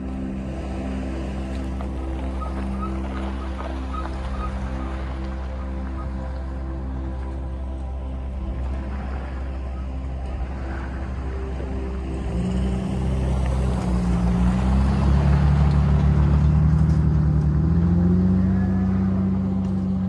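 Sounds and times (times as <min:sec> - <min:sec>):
vehicle engine driving past: 0:10.4 - 0:20.0.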